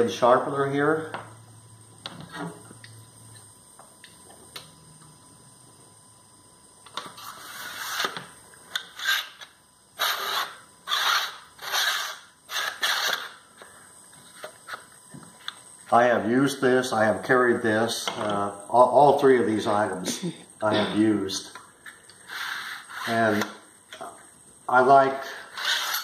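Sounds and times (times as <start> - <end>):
blade scraping through sharpener: 8.8 - 13.4, 25.2 - 26.0.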